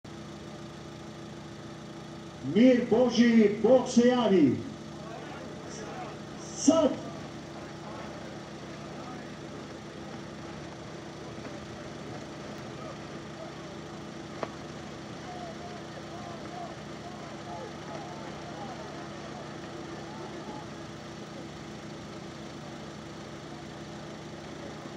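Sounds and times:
engine idling hum: 0:00.0 - 0:24.9
faint crowd voices: 0:04.7 - 0:24.9.

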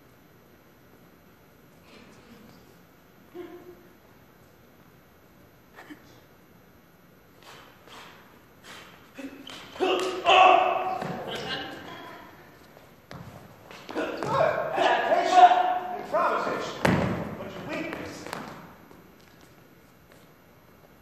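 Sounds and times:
footwork on stage floor: 0:07.3 - 0:21.0
people shouting and grunting: 0:09.1 - 0:12.6, 0:13.7 - 0:18.2.

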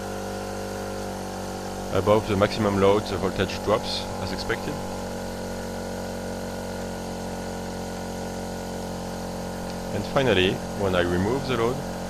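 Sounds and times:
two-stroke generator engine running: 0:00.0 - 0:12.0.

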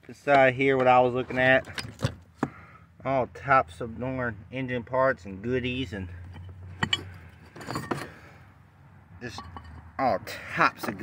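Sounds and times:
metal parts rattling in cardboard box: 0:06.8 - 0:08.2.

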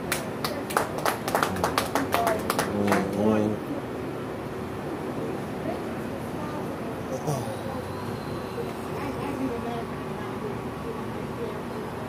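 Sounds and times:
people clapping: 0:00.0 - 0:03.5.

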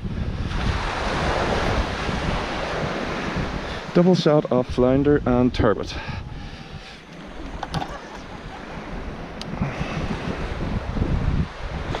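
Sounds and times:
surf washing on beach: 0:00.0 - 0:12.0
wind buffeting microphone: 0:00.0 - 0:12.0.

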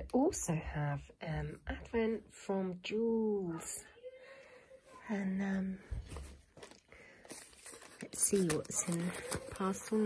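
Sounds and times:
paper bags rustling: 0:06.0 - 0:10.0.

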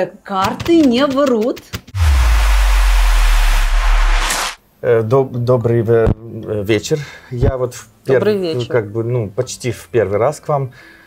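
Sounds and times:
bright swish: 0:01.9 - 0:04.6
loud rushing whoosh: 0:01.9 - 0:04.6
deep bass drone: 0:02.0 - 0:04.6.

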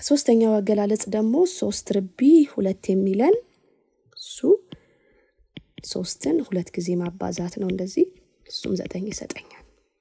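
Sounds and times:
narrator talking: 0:00.0 - 0:03.5, 0:04.2 - 0:04.7, 0:05.8 - 0:09.7.

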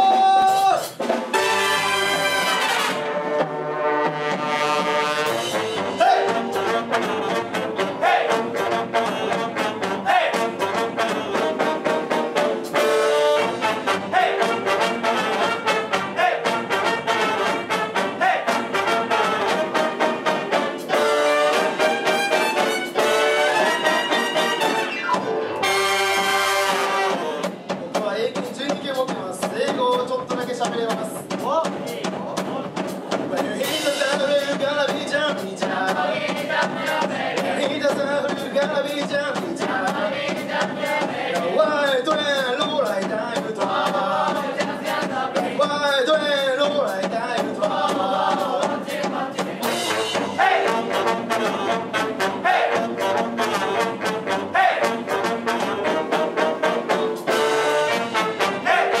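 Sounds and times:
big band playing swing: 0:00.0 - 0:59.0
drums cymbal beat: 0:00.0 - 0:59.0
held brass chords: 0:01.3 - 0:27.7, 0:49.6 - 0:59.0.

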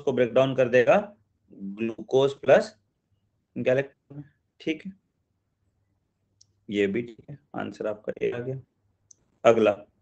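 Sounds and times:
man speaking: 0:00.0 - 0:02.8, 0:03.5 - 0:05.0, 0:06.6 - 0:08.7, 0:09.4 - 0:10.0.

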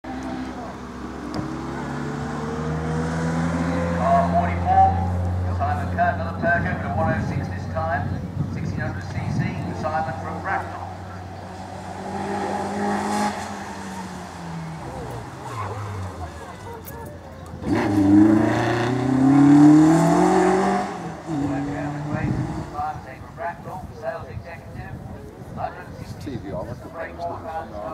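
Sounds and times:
racing car engine: 0:00.0 - 0:07.7, 0:08.7 - 0:23.5
commentator speaking: 0:03.8 - 0:12.8, 0:21.3 - 0:27.9.

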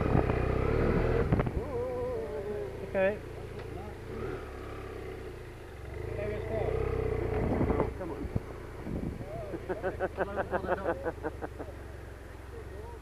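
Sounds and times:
motorcycle engine at low revs: 0:00.0 - 0:13.0.

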